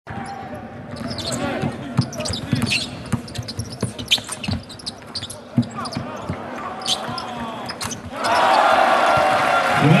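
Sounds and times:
sneakers squeaking: 0.1 - 9.4
crowd noise: 0.1 - 10.0
crowd cheering: 6.6 - 10.0.

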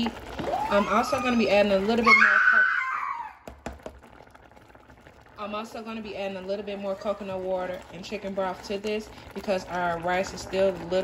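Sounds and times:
plastic spoon knocking saucepan: 3.4 - 4.0.

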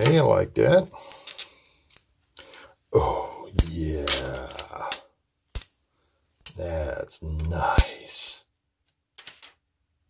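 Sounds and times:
man murmuring: 2.9 - 5.1, 6.6 - 8.4.

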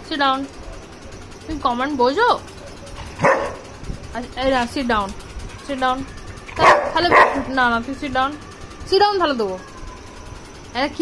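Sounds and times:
dog barking: 3.2 - 3.7, 6.6 - 7.5
dog whining: 5.5 - 7.6.

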